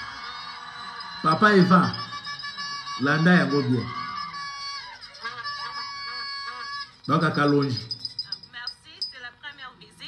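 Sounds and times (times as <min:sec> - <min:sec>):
honking vocal calls: 0:00.6 - 0:08.4.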